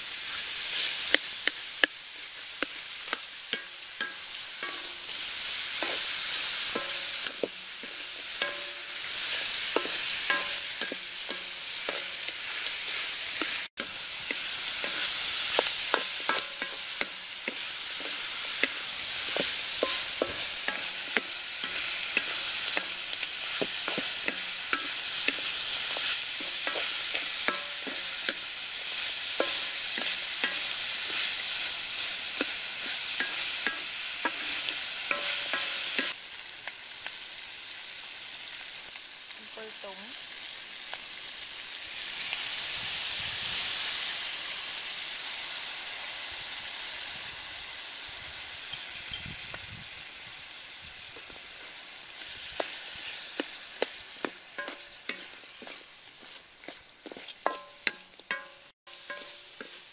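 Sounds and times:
chicken sizzling in a wok: 0:00.0 - 0:59.9
wooden spatula scraping a pan: 0:51.2 - 0:59.9.

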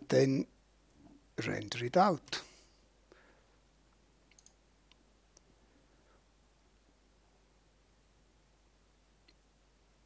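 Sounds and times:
faint computer mouse clicks: 0:03.9 - 0:05.5.

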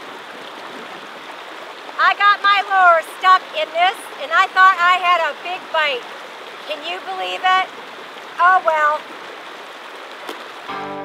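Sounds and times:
stream running over rocks: 0:00.0 - 0:11.0.

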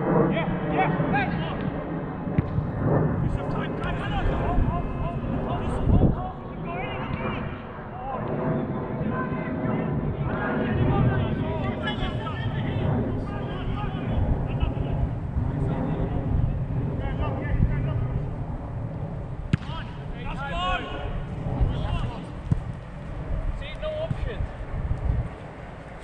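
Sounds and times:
wind on microphone: 0:00.0 - 0:26.0.

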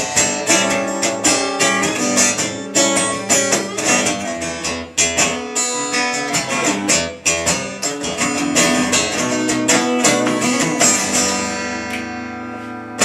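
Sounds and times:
acoustic guitar strumming and picking: 0:00.0 - 0:13.0.

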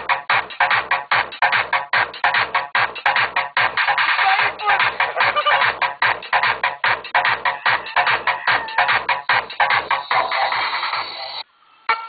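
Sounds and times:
loud music with fast beat: 0:00.0 - 0:11.4.

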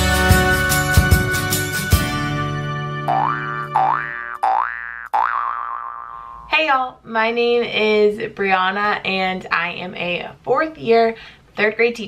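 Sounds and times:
held chord: 0:00.0 - 0:04.1
upward-sliding boing tones: 0:03.1 - 0:06.5.

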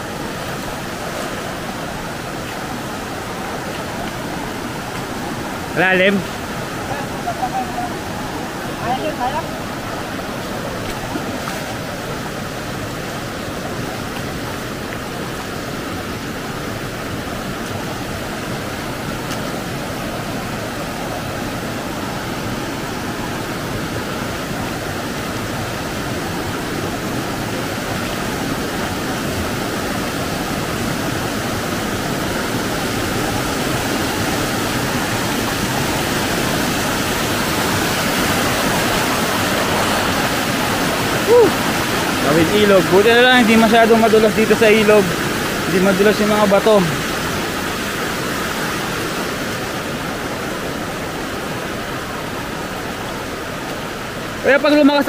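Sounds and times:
river rushing over rocks: 0:00.0 - 0:55.0.

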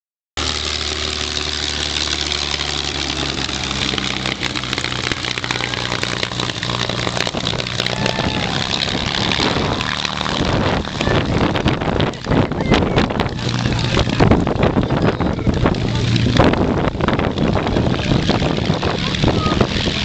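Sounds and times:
propeller aircraft engine taxiing: 0:00.4 - 0:20.0.

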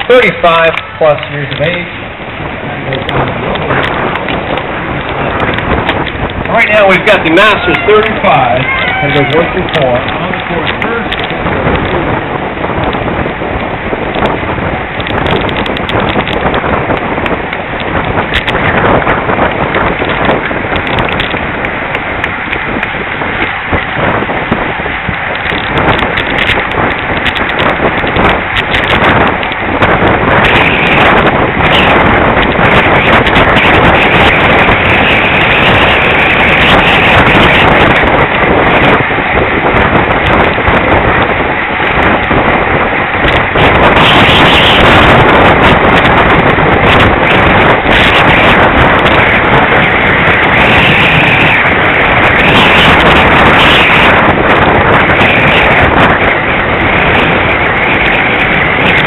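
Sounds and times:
tyre and road rumble: 0:00.0 - 0:59.0
wind rushing over microphone: 0:00.0 - 0:59.0.

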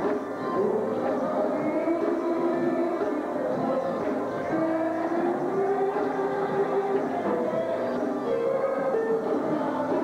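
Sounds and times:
gospel church music: 0:00.0 - 0:10.0.

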